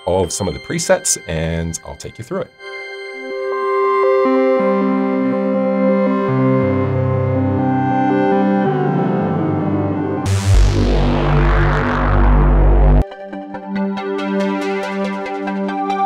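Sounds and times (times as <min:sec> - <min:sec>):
synthesizer chords: 0:03.2 - 0:16.0
synth bass line: 0:08.4 - 0:13.0
bright noisy synth sweep: 0:10.3 - 0:13.0.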